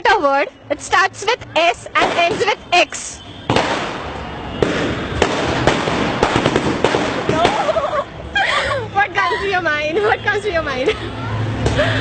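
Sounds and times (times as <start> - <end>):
firecracker sharp cracks: 3.5 - 7.8.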